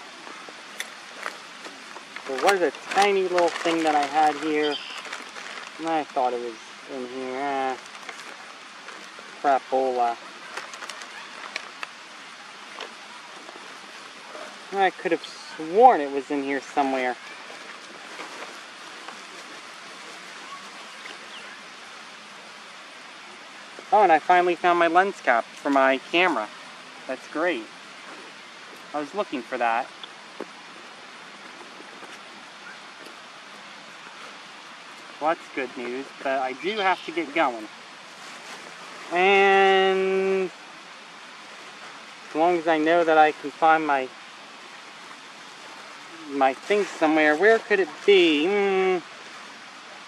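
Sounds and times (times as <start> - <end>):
outdoor background hiss: 0.0 - 50.0
items clicking in gear bag: 2.0 - 5.8.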